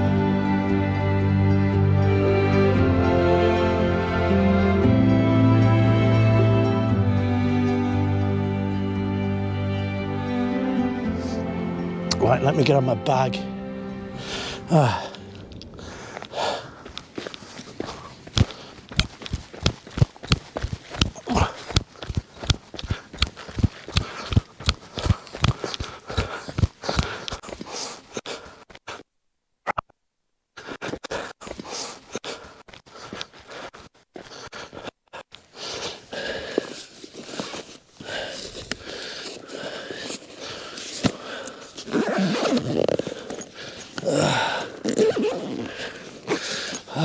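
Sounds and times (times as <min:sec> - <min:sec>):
man panting heavily: 0:14.1 - 0:29.0, 0:30.6 - 0:42.2, 0:43.0 - 0:44.8, 0:45.6 - 0:47.0
running footsteps on stony dirt: 0:14.8 - 0:29.0, 0:30.6 - 0:42.3, 0:42.9 - 0:44.8, 0:45.6 - 0:47.0.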